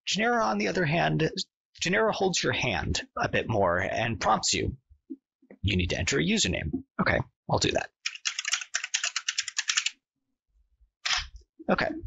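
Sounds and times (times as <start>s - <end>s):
fast typing on a keyboard: 8.0s - 10.0s.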